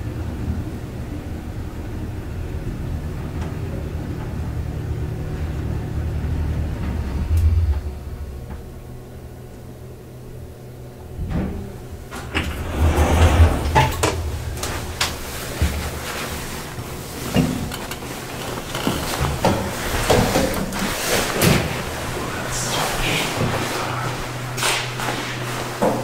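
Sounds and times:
elevator hum: 0.0 - 26.0
elevator doors sliding open: 2.8 - 9.4, 11.1 - 26.0
elevator clunk: 11.1 - 22.1
door mechanism clunks and rattles: 11.2 - 20.8.

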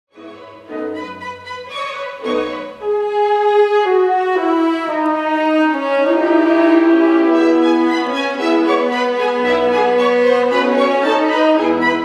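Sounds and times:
bowed string orchestra melody: 0.1 - 12.0.

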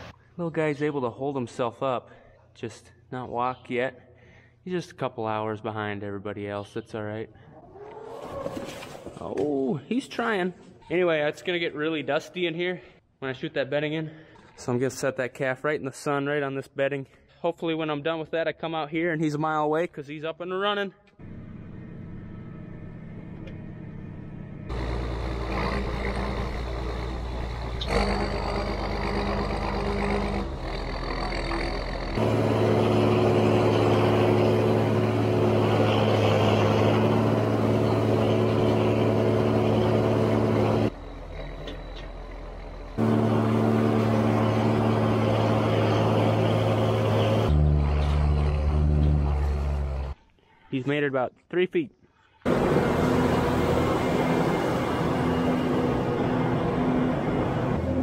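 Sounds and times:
tractor engine running: 21.2 - 50.2, 52.5 - 58.0
bale processor shredding: 24.7 - 41.7, 42.4 - 50.1.

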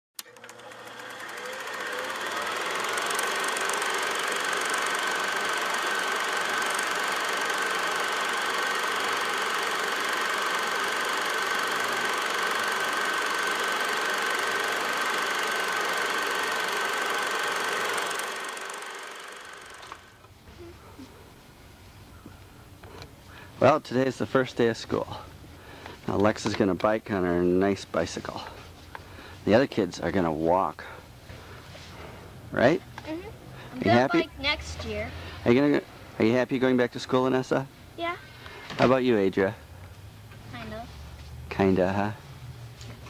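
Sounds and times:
mechanical whirring: 0.2 - 20.2.

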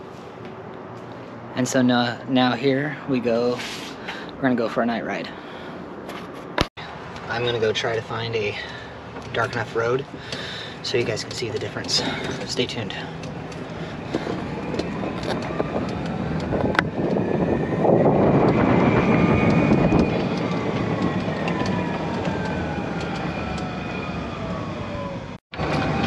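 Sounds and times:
tyre and wind noise: 6.0 - 25.0.

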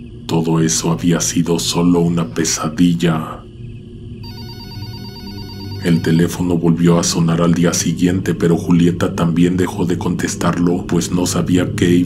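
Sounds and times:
telephone ringing: 4.2 - 6.5
person speaking: 5.8 - 8.3.

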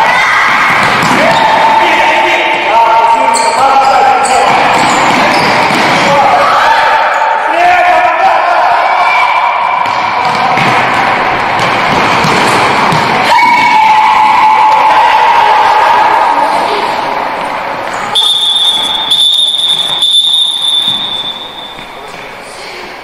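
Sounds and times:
players shouting: 0.0 - 22.0.

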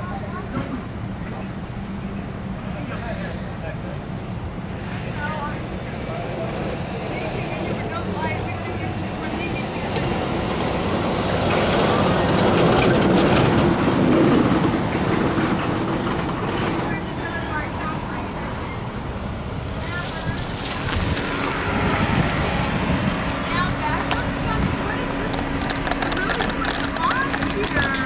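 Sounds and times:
heavy vehicle rumbling past: 0.0 - 28.0
faint high squeal: 10.5 - 13.4.

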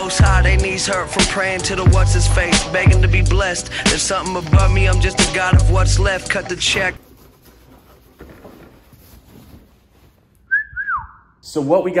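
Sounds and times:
rag rubbing on handlebar: 0.2 - 10.2
person whistling: 10.5 - 11.4.

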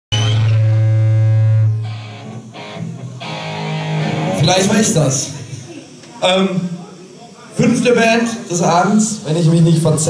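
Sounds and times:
distorted electric guitar: 0.1 - 6.0.

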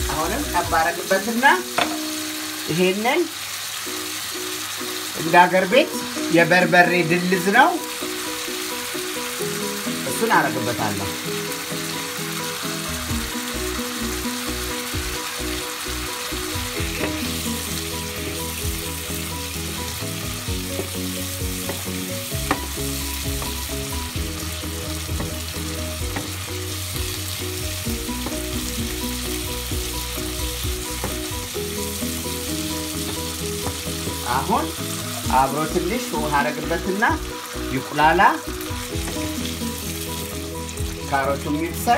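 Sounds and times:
vegetables sizzling in oil: 0.0 - 41.9
wooden spoon stirring: 31.9 - 35.4.

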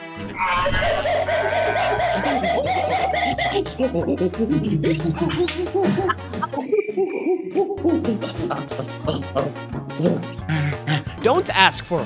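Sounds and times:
music: 0.0 - 6.6, 7.5 - 12.0
rapid monkey-style hooting: 0.4 - 11.2.

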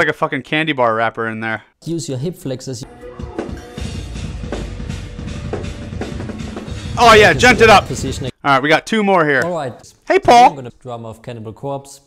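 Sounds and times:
backing track: 2.9 - 8.3.

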